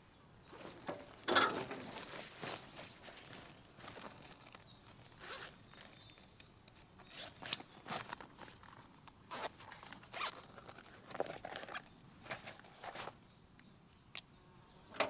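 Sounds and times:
rummaging in fabric bag: 0.4 - 6.4, 7.0 - 13.2
bag zipper: 9.3 - 10.5.

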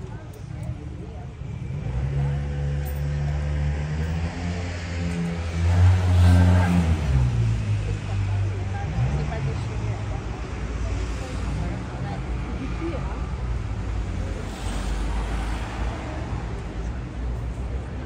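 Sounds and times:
vehicle engine passing by: 1.6 - 17.2.

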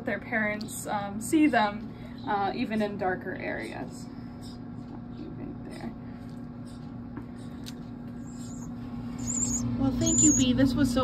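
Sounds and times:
steady low hum: 0.0 - 11.0
high-pitched wavering bird calls: 8.2 - 10.8.

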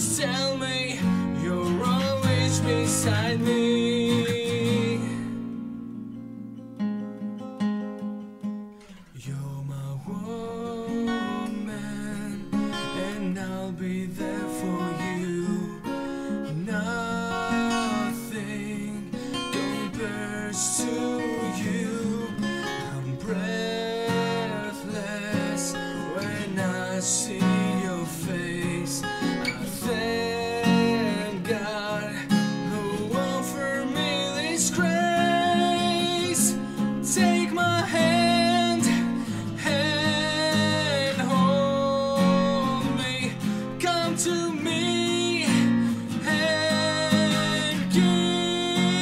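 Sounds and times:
acoustic guitar ballad: 0.0 - 49.0.

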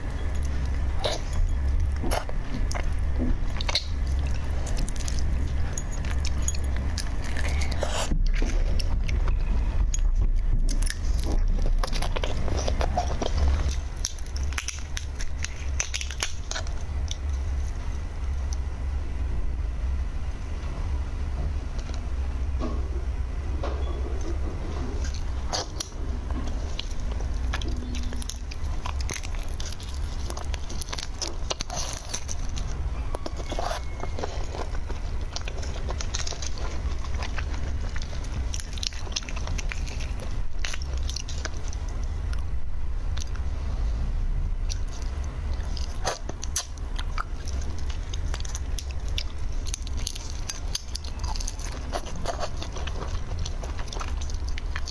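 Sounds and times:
chewing: 0.0 - 18.7, 23.6 - 43.6, 44.6 - 54.9
steady low hum: 0.0 - 54.9.

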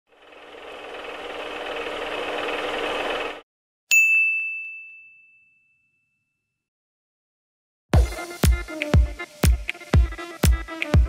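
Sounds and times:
bright ding: 3.9 - 6.5.

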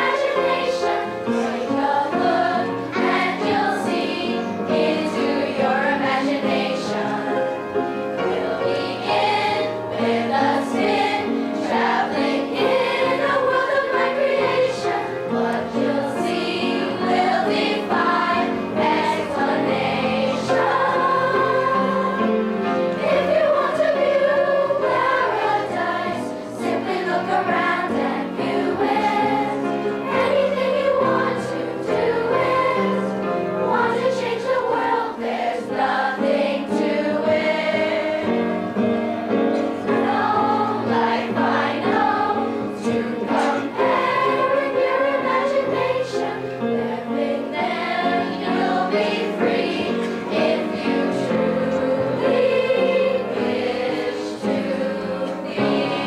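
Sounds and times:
children's chorus singing: 0.0 - 56.0
musical accompaniment: 0.0 - 56.0.

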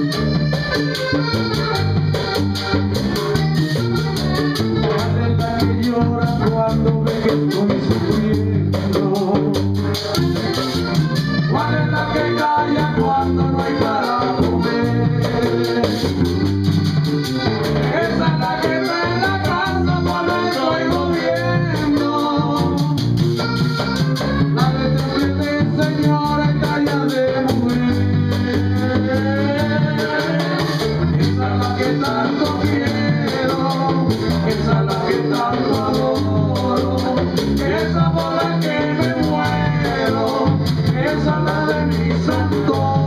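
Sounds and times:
button accordion melody: 0.0 - 43.0
electric bass line: 0.0 - 43.0
hand drum: 0.0 - 43.0.

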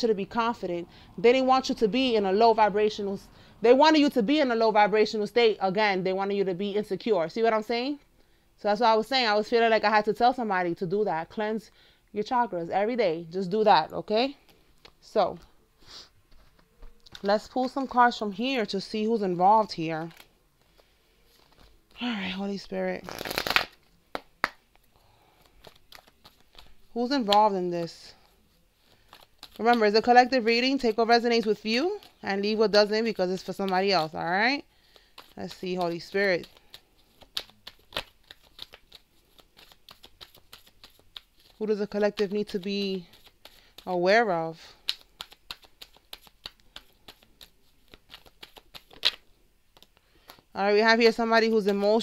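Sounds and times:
faint card handling: 14.3 - 18.2, 19.6 - 50.5
cards shuffling: 14.4 - 18.2, 19.5 - 22.0, 22.6 - 52.0.

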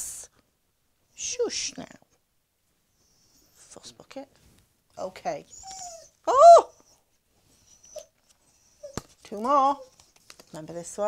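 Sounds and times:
dog whimpering and whining: 5.5 - 10.0.

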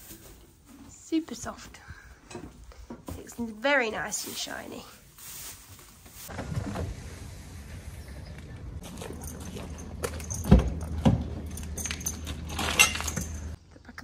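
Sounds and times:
metal fittings jingling: 8.8 - 13.6.

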